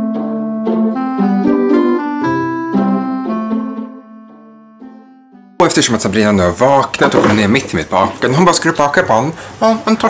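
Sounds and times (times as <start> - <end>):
keyboard notes ringing: 0.0 - 5.6.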